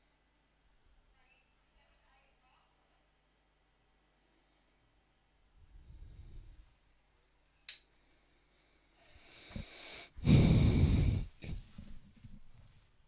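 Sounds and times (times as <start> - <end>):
person breathing: 5.7 - 6.8, 7.9 - 12.0.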